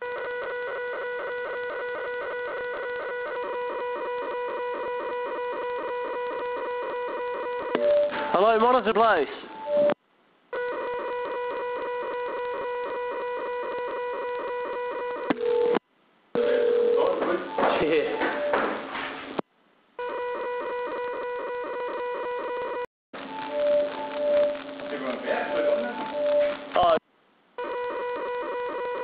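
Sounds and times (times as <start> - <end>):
telephone ringing tone: 0.0 - 8.8, 9.5 - 15.8, 16.4 - 18.6, 20.0 - 26.6, 27.6 - 29.0.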